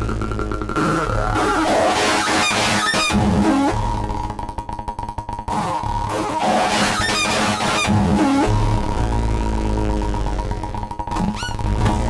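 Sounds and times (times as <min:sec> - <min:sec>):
synthesizer feedback gliding pitches: 0:00.0 - 0:04.8, 0:05.5 - 0:12.0.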